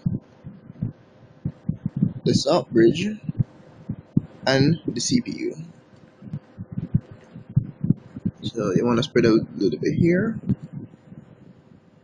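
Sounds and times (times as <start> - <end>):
soft low handling thuds: 0.0 - 4.8.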